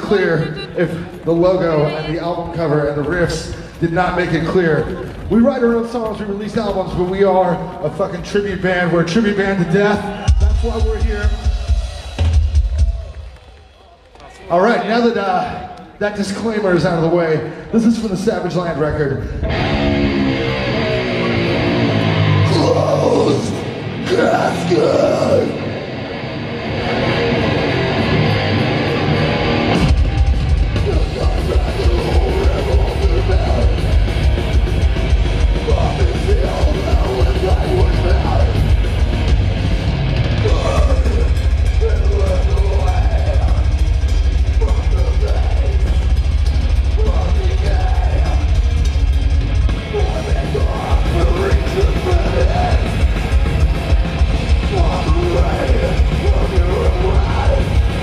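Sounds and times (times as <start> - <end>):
distorted guitar riff: 0.0 - 2.4, 19.3 - 58.0
drums and bass: 0.0 - 13.5, 17.8 - 58.0
metal vocals: 19.3 - 25.9, 28.9 - 58.0.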